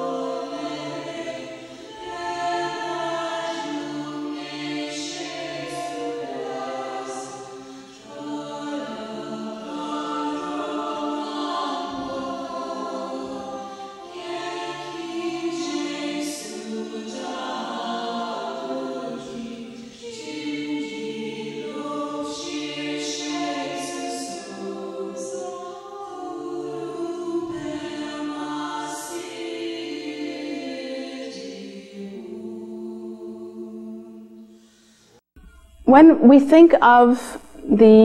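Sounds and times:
voices singing devotional chant: 0:00.0 - 0:35.2.

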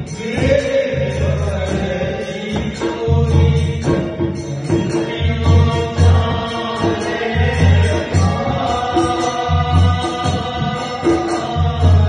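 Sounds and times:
devotional folk singing: 0:00.0 - 0:12.0.

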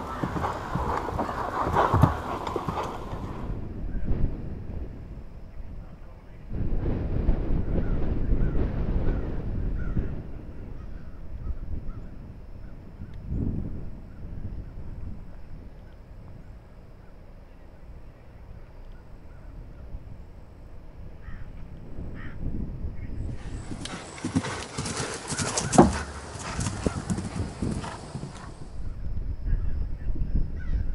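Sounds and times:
horse hoofbeats on grass: 0:00.0 - 0:03.5, 0:23.4 - 0:28.7
wind rumbling on microphone: 0:00.0 - 0:30.9.

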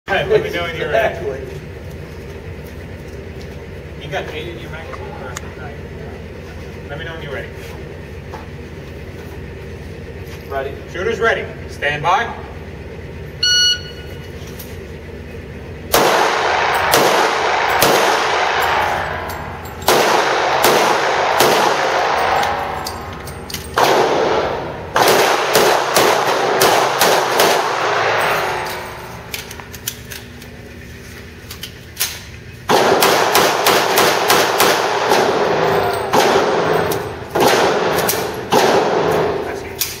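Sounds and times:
handgun shots echoing: 0:15.9 - 0:30.2, 0:32.0 - 0:40.0.

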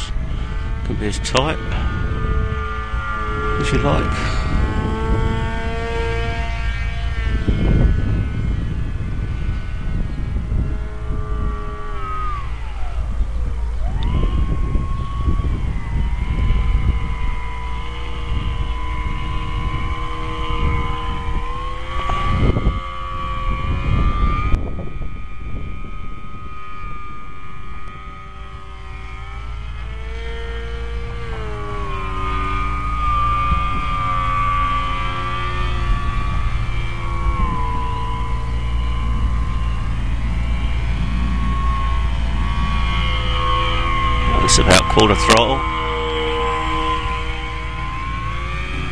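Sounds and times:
electric motor and propeller whine: 0:00.0 - 0:48.9
wind buffeting microphone: 0:00.0 - 0:48.9.

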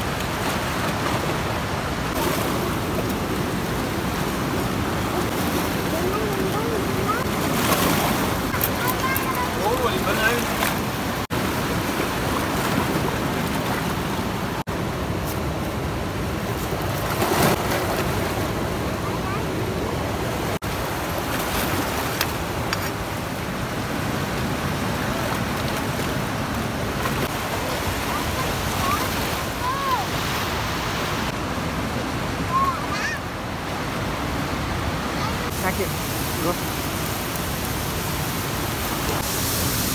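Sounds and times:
river rushing over rocks: 0:00.0 - 0:39.9.

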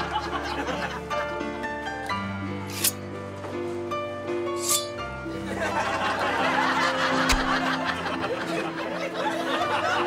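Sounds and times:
group laughing: 0:00.0 - 0:01.3, 0:05.3 - 0:10.0
light music: 0:00.0 - 0:10.0.

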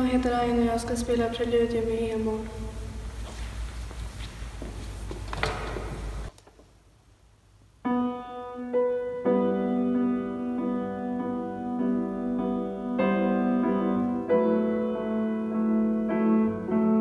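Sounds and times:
footsteps and shuffling: 0:02.9 - 0:06.8
knocks: 0:05.3 - 0:06.1
grand piano playing slow chords: 0:07.8 - 0:17.0.

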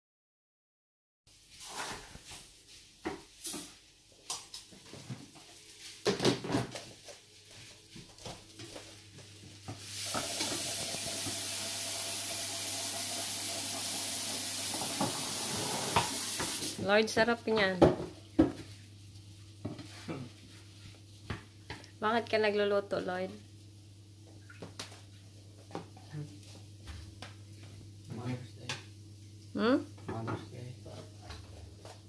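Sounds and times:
food sizzling in a frying pan: 0:09.6 - 0:16.8.

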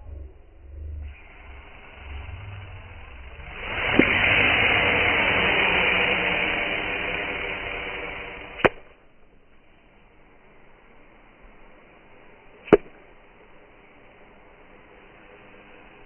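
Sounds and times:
snake hissing: 0:00.6 - 0:08.9, 0:09.6 - 0:16.0.

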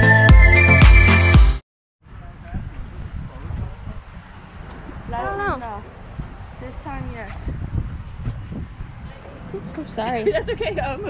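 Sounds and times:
wind buffeting microphone: 0:02.0 - 0:11.0.

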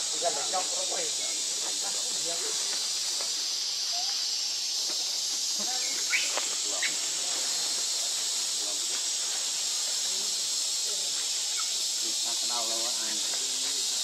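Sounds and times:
insects hissing in trees: 0:00.0 - 0:14.0.

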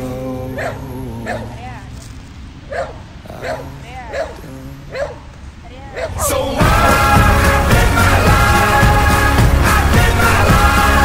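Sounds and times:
faint song playing: 0:00.0 - 0:11.0
dog yipping: 0:02.7 - 0:05.2, 0:05.9 - 0:06.3.

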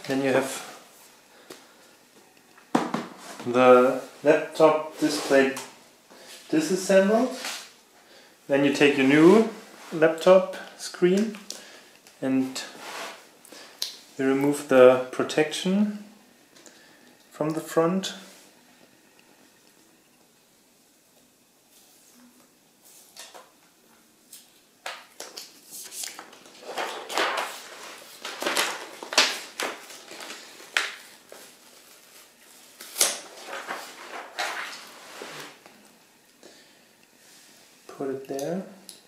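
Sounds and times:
plastic film peeling off: 0:25.2 - 0:35.5.

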